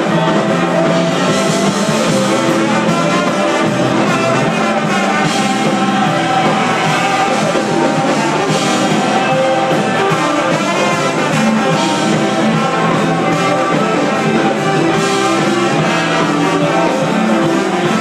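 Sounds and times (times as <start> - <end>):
live band playing: 0.0 - 18.0
trombone leading: 0.0 - 18.0.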